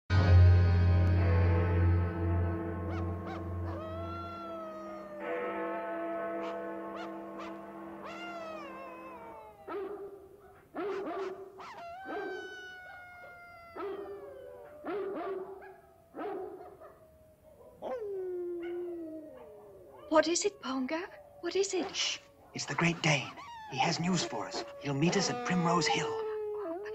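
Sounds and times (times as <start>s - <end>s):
low music tones: 0.1s - 10.0s
distant dogs howling and barking: 2.6s - 26.9s.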